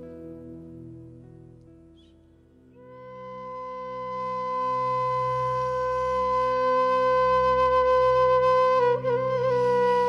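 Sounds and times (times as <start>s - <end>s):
held flute-like note: 2.8s - 10.0s.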